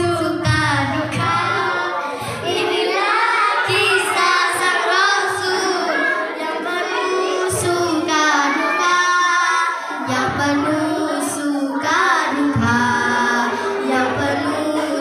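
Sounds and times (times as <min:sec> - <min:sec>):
girls singing over loudspeaker: 0:00.0 - 0:15.0.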